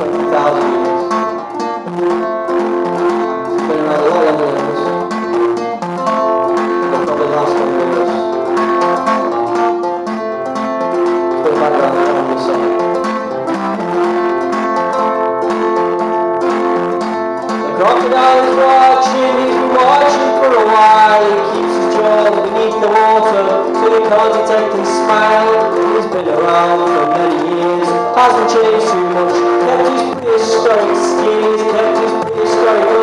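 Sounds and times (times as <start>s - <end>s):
acoustic guitar: 0.0s - 33.0s.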